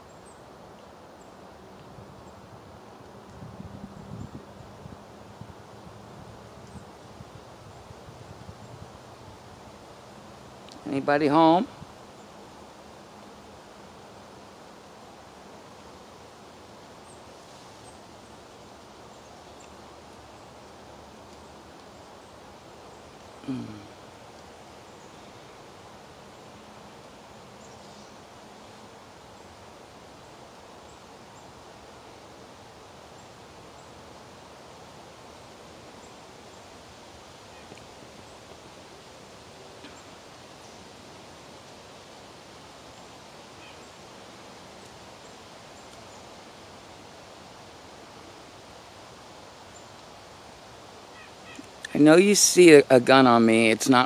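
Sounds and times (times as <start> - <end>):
woodland background hiss: 0.0 - 54.0.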